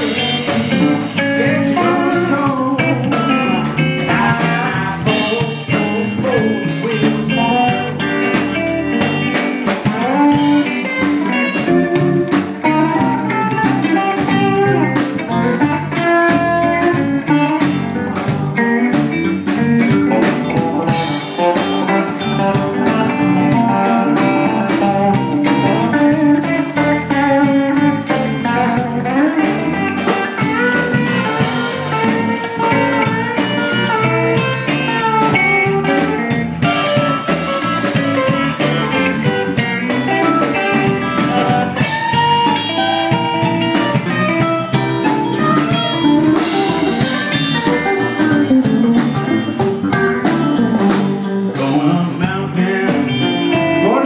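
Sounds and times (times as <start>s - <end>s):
drum kit beat: 0.0s - 54.0s
electric guitars: 0.0s - 54.0s.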